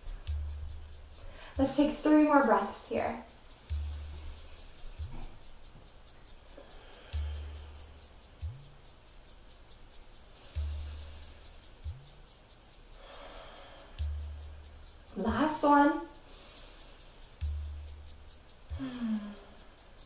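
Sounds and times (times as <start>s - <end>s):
soft background music: 0.0s - 20.0s
slow breathing: 1.1s - 1.6s, 3.5s - 8.5s, 10.2s - 15.1s, 16.2s - 17.6s, 18.6s - 20.0s.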